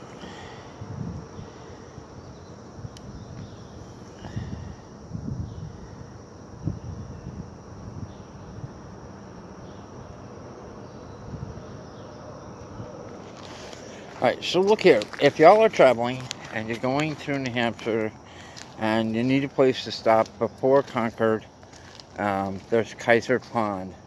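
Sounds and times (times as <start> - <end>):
faint high insect buzz: 0.0 - 24.0.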